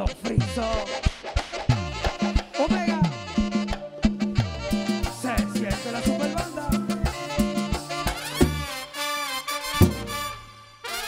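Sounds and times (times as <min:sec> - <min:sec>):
brass section: 0:00.0 - 0:11.0
merengue band playing: 0:00.0 - 0:11.0
bass line: 0:01.7 - 0:08.8, 0:09.8 - 0:10.4
drum strokes: 0:07.6 - 0:08.8, 0:09.8 - 0:10.4.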